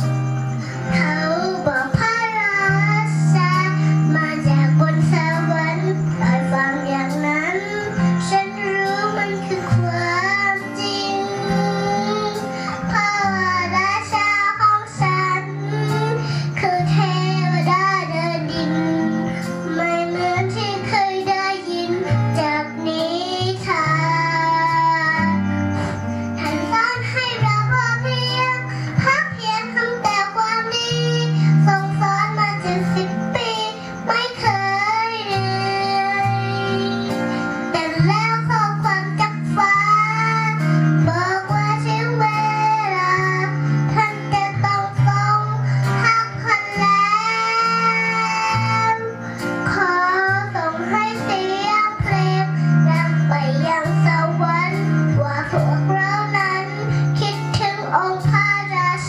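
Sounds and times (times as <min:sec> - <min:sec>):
backing music with bass: 0:00.0 - 0:59.0
girl singing: 0:00.0 - 0:59.0.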